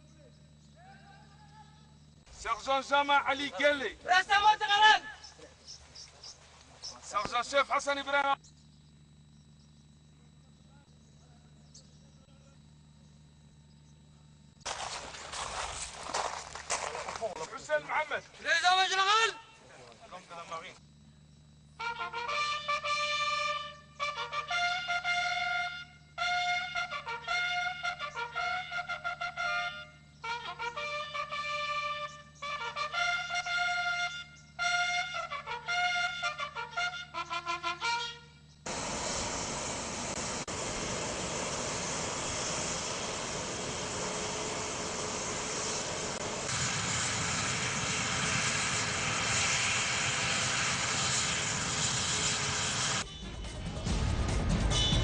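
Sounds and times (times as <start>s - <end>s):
military trumpet call: 21.8s - 38.4s
helicopter engine and rotor: 38.7s - 53.1s.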